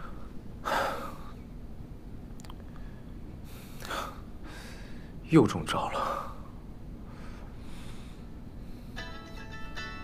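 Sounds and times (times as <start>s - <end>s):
man breathing: 0.0s - 1.5s, 2.7s - 5.2s, 6.0s - 9.0s.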